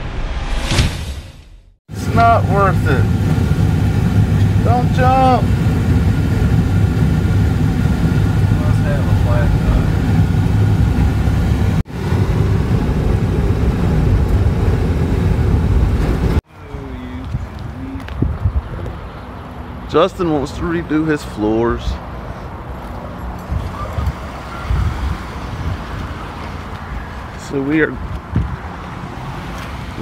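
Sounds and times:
vehicle road and engine rumble: 1.8s - 30.0s.

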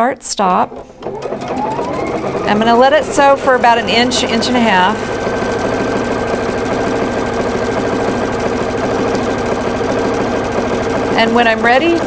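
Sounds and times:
sewing machine stitching: 0.6s - 12.0s.

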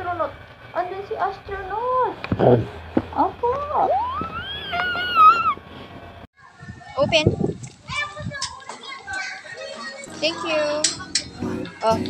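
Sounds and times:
children chattering and calling: 6.4s - 12.0s.

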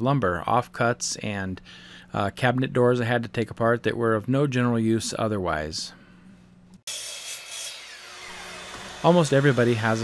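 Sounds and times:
miter saw spinning down: 7.6s - 10.0s.

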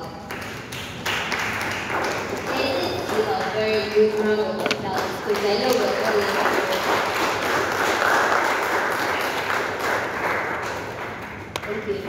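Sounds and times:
audience applause: 0.3s - 3.4s, 5.0s - 11.7s.

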